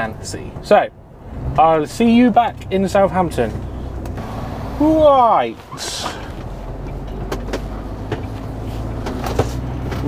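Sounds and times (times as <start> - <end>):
lorry diesel engine running: 0.0 - 10.0
road noise: 0.0 - 10.0.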